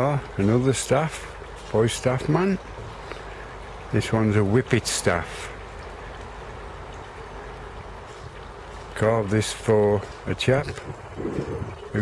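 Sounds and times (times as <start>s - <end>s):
outdoor rumble and hiss: 0.0s - 12.0s.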